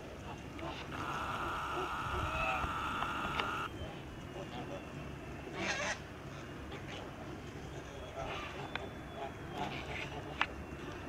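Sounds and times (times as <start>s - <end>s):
goose honk: 0.6s - 3.7s
steady high tone: 0.9s - 3.7s.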